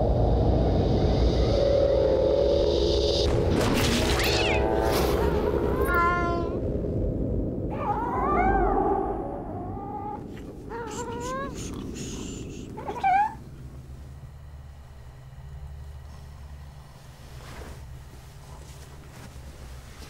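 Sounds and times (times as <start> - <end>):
low rumble: 0.0 - 19.9
low steady hum: 0.0 - 20.0
cat yowling: 7.7 - 11.7, 12.8 - 13.4.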